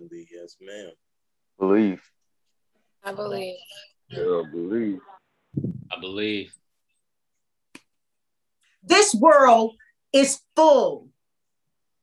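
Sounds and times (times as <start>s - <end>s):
woman speaking: 3.0s - 4.0s, 8.8s - 11.1s.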